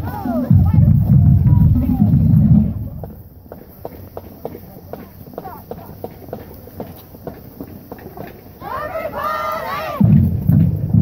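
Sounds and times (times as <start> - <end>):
faint voices: 0.0 - 10.9
footsteps on pavement: 0.0 - 11.0.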